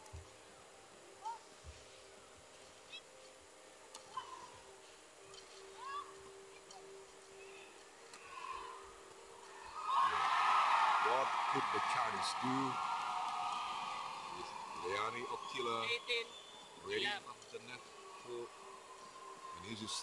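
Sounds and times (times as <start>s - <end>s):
crowd noise: 9.7s - 20.0s.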